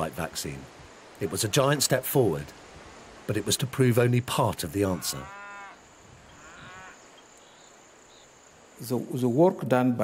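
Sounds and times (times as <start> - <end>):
man speaking: 1.2 - 2.5.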